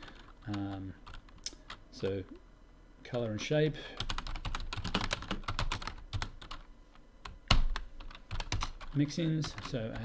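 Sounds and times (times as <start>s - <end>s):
computer keyboard typing: 0.0s - 1.8s, 4.0s - 10.0s.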